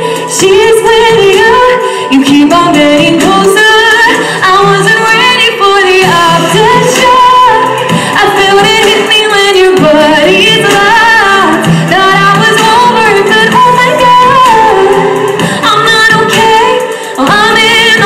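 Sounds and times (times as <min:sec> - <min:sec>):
recorded backing track: 0:00.0 - 0:18.0
woman singing into a microphone: 0:00.0 - 0:18.0.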